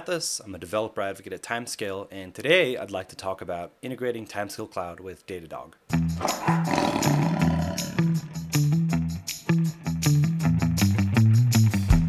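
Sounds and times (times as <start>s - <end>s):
tiger roaring: 6.2s - 8.7s.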